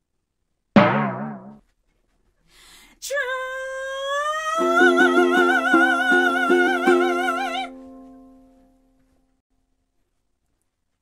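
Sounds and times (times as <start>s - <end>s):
ukulele strumming: 0.8s - 1.6s, 4.6s - 8.4s
person singing with vibrato: 3.0s - 7.9s.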